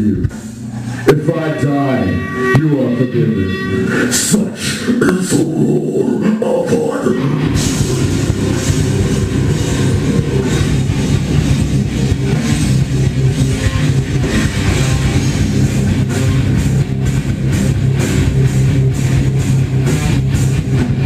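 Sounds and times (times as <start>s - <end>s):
drum kit: 0.0s - 1.1s, 6.7s - 21.0s
bass guitar: 0.0s - 21.0s
distorted electric guitars: 0.0s - 21.0s.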